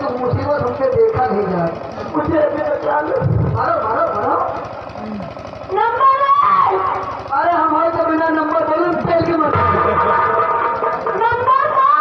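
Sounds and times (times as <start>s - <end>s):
fast low rattle: 0.0s - 12.0s.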